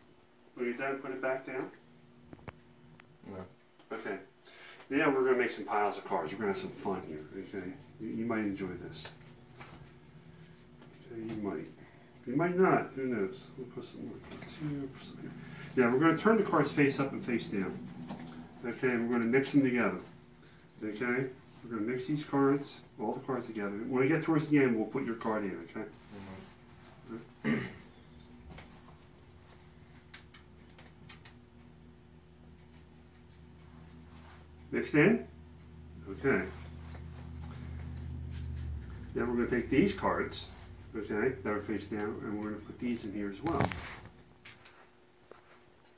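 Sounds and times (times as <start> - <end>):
low room hum: 0.0 - 45.9.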